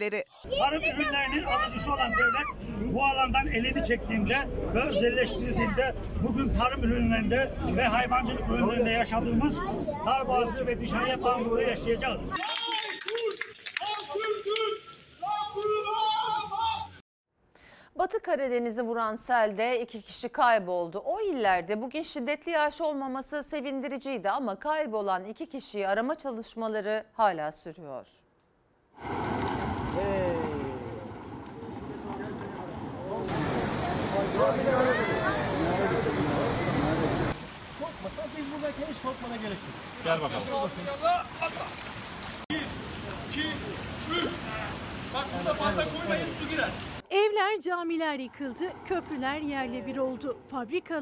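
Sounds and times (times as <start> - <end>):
man shouting slogan: 0.5 - 2.7, 13.9 - 17.0
crowd: 7.6 - 17.0, 30.0 - 37.4
people calling: 10.6 - 17.0, 30.0 - 38.1, 40.4 - 41.8
floodwater rushing: 29.0 - 47.2.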